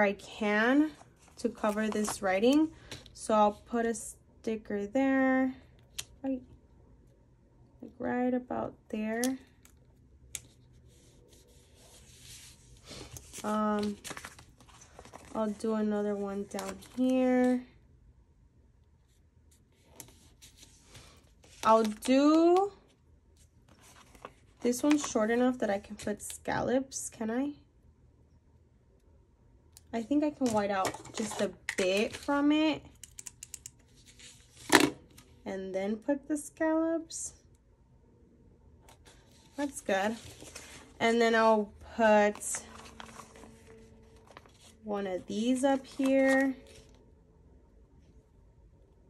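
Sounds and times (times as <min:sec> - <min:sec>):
paper rustle: 0:10.8 - 0:15.4, 0:23.7 - 0:25.0, 0:39.0 - 0:41.0, 0:42.3 - 0:44.8, 0:45.5 - 0:47.0.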